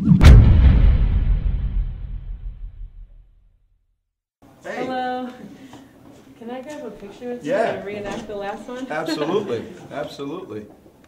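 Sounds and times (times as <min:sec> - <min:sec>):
cinematic crash: 0:00.0 - 0:03.5
deep boom: 0:00.0 - 0:03.6.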